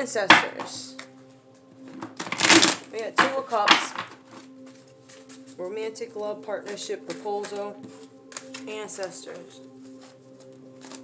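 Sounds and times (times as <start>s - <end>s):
cards rustling as shuffled: 1.9s - 5.6s, 6.6s - 11.0s.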